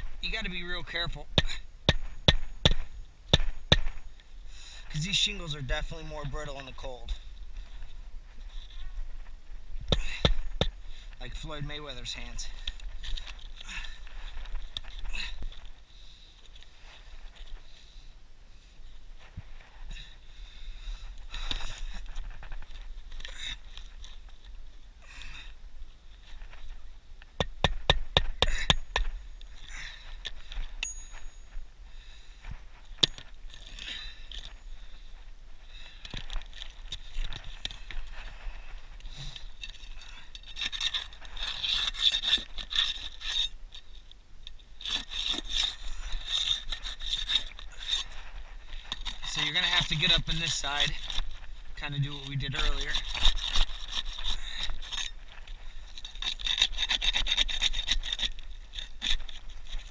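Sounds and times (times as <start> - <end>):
pry bar scraping under shingles: 32.8 - 59.9.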